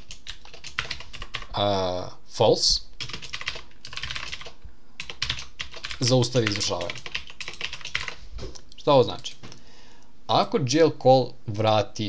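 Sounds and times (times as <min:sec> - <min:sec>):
computer keyboard typing: 0:00.0 - 0:01.6, 0:03.0 - 0:08.2, 0:09.1 - 0:09.4.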